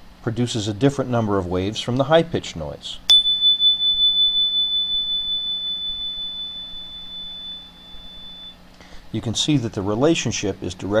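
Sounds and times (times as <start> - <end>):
chime ringing high tone: 3.1 - 8.6.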